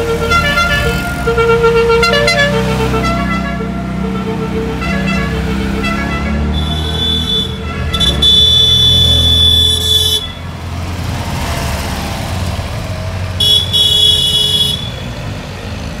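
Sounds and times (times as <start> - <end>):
car horns honking: 0.0 - 10.8, 13.3 - 15.4
small car engines running: 4.4 - 16.0.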